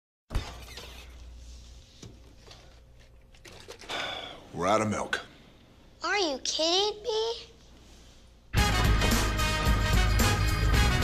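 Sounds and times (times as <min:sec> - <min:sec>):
refrigerator hum: 0:00.3 - 0:05.4
bottles rattling: 0:02.3 - 0:04.2.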